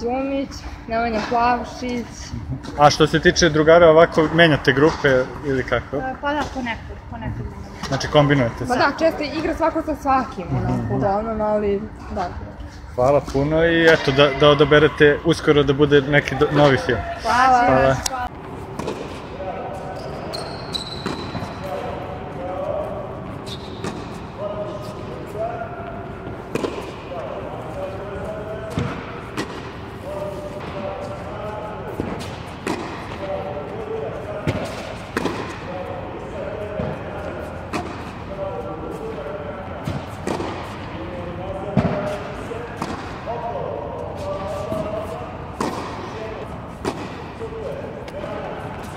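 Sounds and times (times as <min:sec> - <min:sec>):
voices in background: 0:00.0 - 0:48.9
tennis balls bouncing on court: 0:17.6 - 0:22.6, 0:23.4 - 0:25.0, 0:26.2 - 0:28.0, 0:28.7 - 0:31.3, 0:31.9 - 0:35.9, 0:36.6 - 0:38.2, 0:38.9 - 0:43.5, 0:44.4 - 0:48.9
tennis balls struck with rackets: 0:17.7 - 0:19.8, 0:20.8 - 0:22.6, 0:23.4 - 0:24.2, 0:26.2 - 0:28.0, 0:28.7 - 0:31.2, 0:31.8 - 0:35.9, 0:36.6 - 0:43.6, 0:44.2 - 0:48.9
tennis ball struck with racket: 0:26.5 - 0:27.0, 0:31.9 - 0:33.4, 0:34.4 - 0:35.6, 0:39.8 - 0:40.8, 0:41.7 - 0:43.2, 0:45.6 - 0:46.1, 0:46.8 - 0:47.2.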